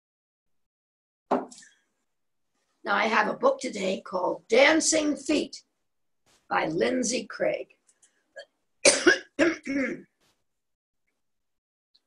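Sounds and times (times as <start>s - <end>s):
woman clearing throat with coughs: 8.4s - 10.1s.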